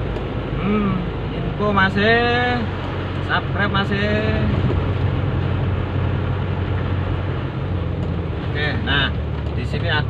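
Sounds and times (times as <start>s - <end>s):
car engine humming: 0.0s - 10.0s
tyre noise on wet road: 0.0s - 10.0s.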